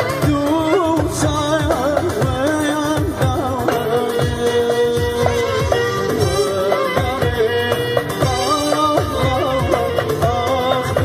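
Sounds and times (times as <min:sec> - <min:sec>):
frame drum beat: 0:00.0 - 0:11.0
keyboard: 0:00.0 - 0:11.0.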